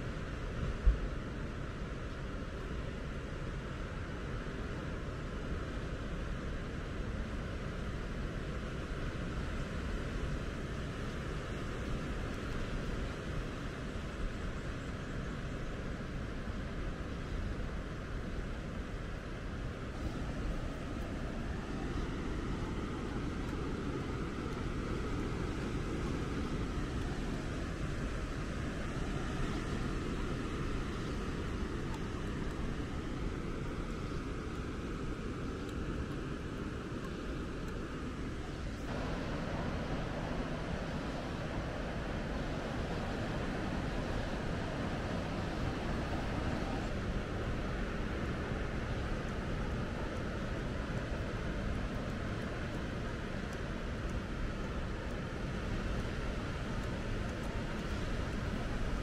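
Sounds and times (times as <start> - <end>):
low rumbling background noise: 0.0 - 59.0.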